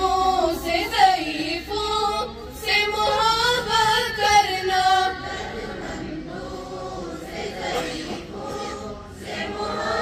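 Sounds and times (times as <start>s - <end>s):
girls singing in unison: 0.0s - 10.0s.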